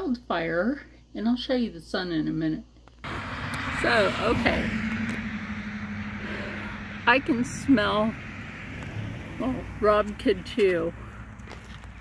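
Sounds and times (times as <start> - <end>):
low rumble: 3.0 - 10.0.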